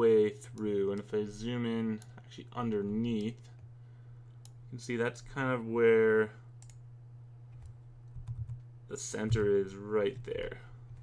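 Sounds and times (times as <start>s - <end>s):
low steady hum: 0.0s - 11.0s
computer mouse clicks: 6.6s - 6.8s.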